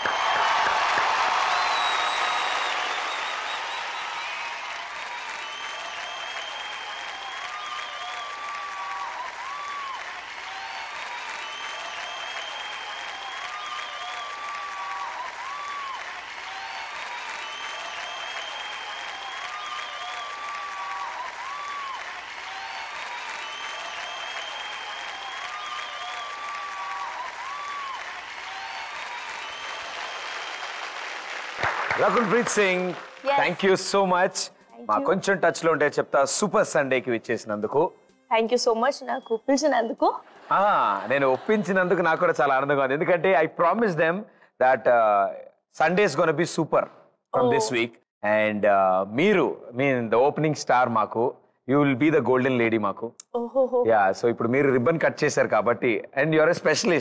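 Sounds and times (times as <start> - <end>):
studio audience applauding: 0.0 - 37.1, 40.3 - 44.2, 44.8 - 47.9, 56.3 - 57.0.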